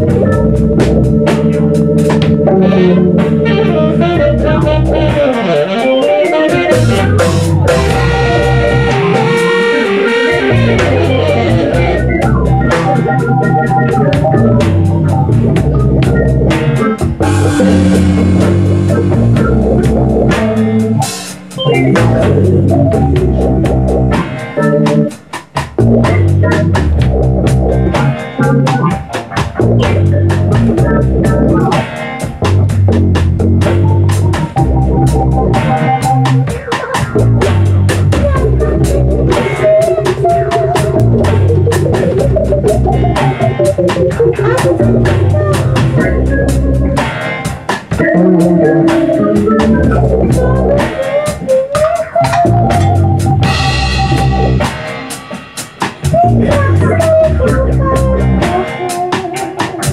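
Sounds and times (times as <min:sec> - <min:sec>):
live band music: 0:00.0 - 0:59.9.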